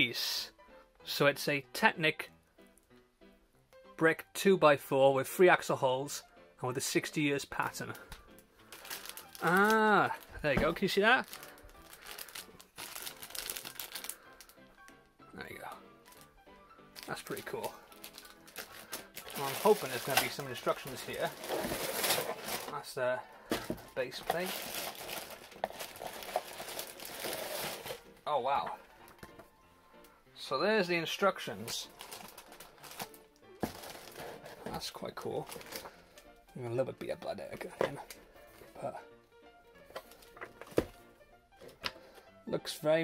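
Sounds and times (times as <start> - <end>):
quiet background music: 0.0 - 43.0
plastic bag crinkling: 8.6 - 14.6, 17.0 - 22.9, 23.5 - 28.1, 31.6 - 36.1
paper booklet handling noise: 17.0 - 22.8, 23.5 - 28.0, 31.6 - 36.0.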